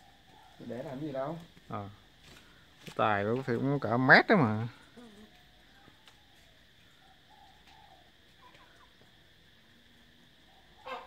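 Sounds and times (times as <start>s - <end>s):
high insect buzz: 0.0s - 11.0s
faint bird calls: 4.8s - 9.2s, 10.4s - 11.0s.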